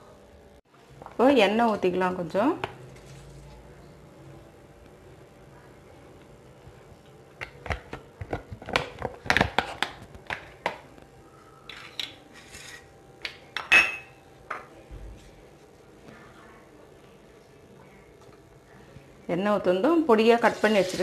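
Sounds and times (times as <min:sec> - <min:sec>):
dishes and bowls clinking: 0:13.6 - 0:14.7.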